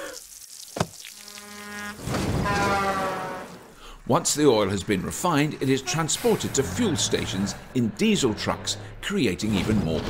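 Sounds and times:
garden hose spraying: 0.0s - 2.2s
steady buzzing tone: 1.2s - 2.6s.

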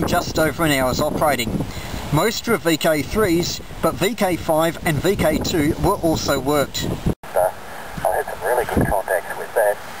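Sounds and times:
radio speech through speaker: 7.3s - 9.8s.

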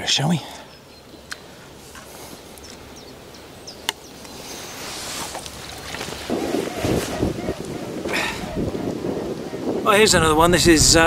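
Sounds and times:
low outdoor background noise: 0.0s - 11.0s.

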